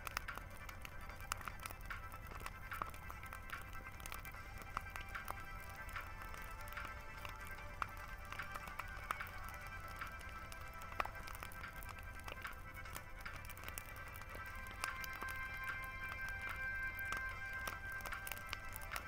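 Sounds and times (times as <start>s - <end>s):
background music with held tones: 0.0s - 19.0s
bonfire crackling and popping: 0.0s - 19.0s.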